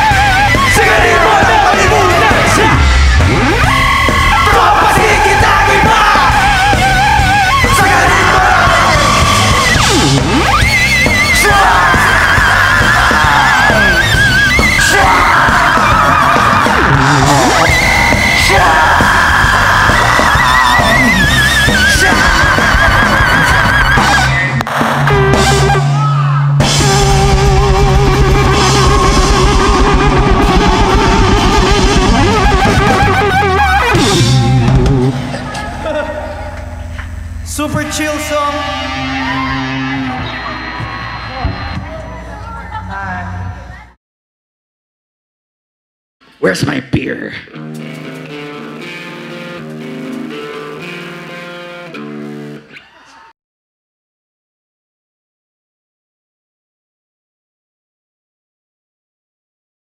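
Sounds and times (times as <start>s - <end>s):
electric guitar bending notes: 0.0s - 42.4s, 47.5s - 52.8s
live rock band: 0.0s - 42.9s, 47.5s - 53.3s
drums: 0.0s - 44.0s, 47.5s - 53.0s
vocalist yelling into microphone: 0.6s - 2.9s, 4.4s - 9.6s, 11.2s - 22.7s
electric guitar with vibrato: 47.5s - 52.8s.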